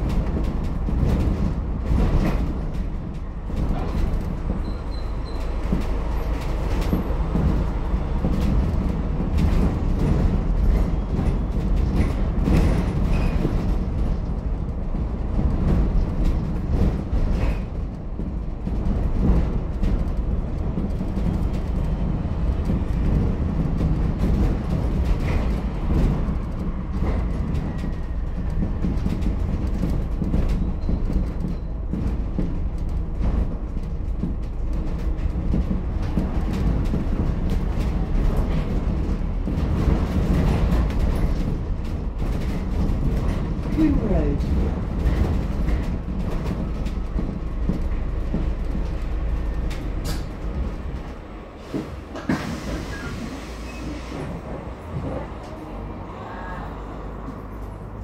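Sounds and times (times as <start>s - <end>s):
body rattles and knocks: 0.0s - 52.7s
bus rumbling: 0.0s - 58.0s.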